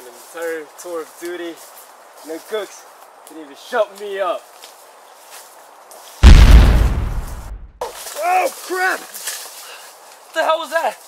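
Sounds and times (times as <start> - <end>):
explosion blast: 6.2 - 7.8.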